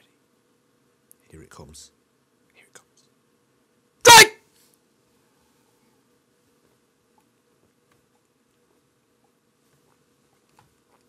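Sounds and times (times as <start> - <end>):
faint whisper-like sound: 0.0 - 0.4, 2.4 - 3.2.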